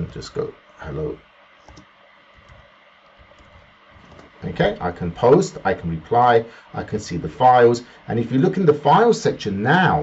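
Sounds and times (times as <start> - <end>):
faint keyboard keystrokes: 1.6 - 4.4.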